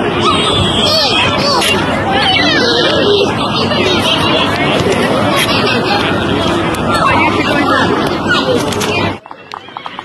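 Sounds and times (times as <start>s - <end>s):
spectators shouting and chattering: 0.0s - 10.0s
steady rushing noise: 0.0s - 10.0s.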